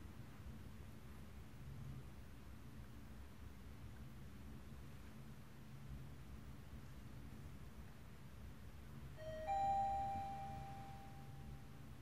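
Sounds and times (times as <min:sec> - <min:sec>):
elevator arrival chime: 0:09.2 - 0:11.8.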